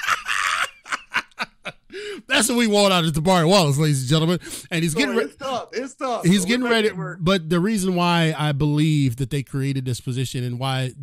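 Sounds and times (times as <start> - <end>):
man laughing: 0.0 - 2.2.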